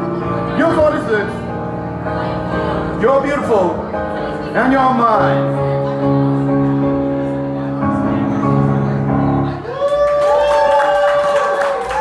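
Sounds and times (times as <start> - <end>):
people cheering and whooping: 9.6 - 12.0
audience applauding: 9.7 - 12.0.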